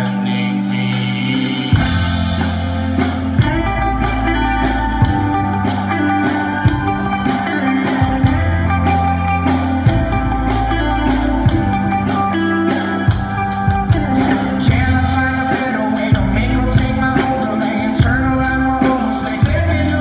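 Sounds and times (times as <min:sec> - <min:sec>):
bass line: 0:00.0 - 0:20.0
electric guitars: 0:00.0 - 0:20.0
steady drum beat: 0:00.9 - 0:20.0.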